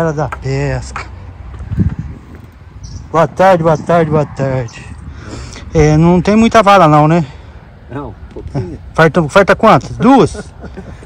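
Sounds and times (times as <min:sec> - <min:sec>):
wind rumble on microphone: 0:01.0 - 0:07.0, 0:07.7 - 0:08.9.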